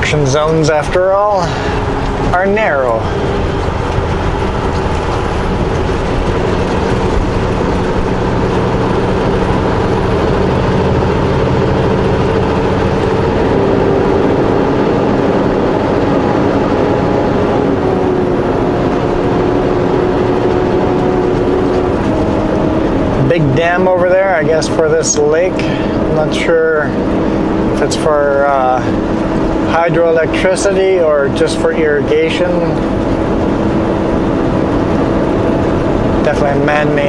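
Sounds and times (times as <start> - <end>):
diesel truck engine droning: 0.0 - 37.0
road noise inside cab: 0.0 - 37.0.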